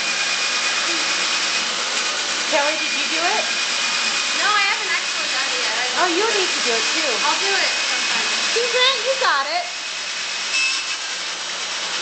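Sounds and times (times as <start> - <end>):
electric drill running: 0.0 - 12.0.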